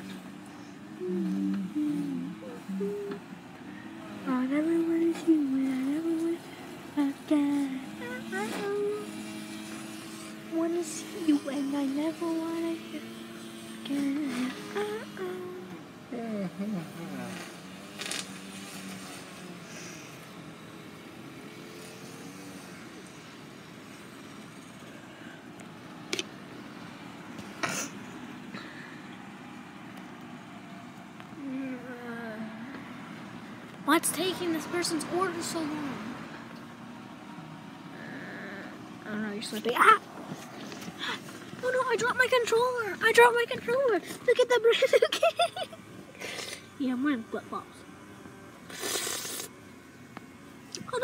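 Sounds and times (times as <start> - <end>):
car idling hum: 0.0 - 48.7
child humming a tune: 0.9 - 3.4, 4.3 - 9.2, 13.8 - 15.8
faint voices: 0.9 - 18.2.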